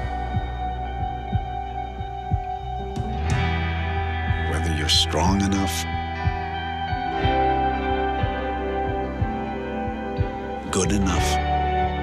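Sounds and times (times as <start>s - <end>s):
deep low pulse: 0.0s - 12.0s
low drone with held tones: 0.0s - 12.0s.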